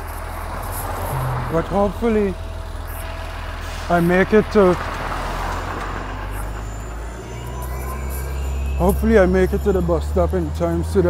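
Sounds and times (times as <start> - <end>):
low engine hum: 0.0 - 11.0
passing vehicles rushing: 0.0 - 11.0.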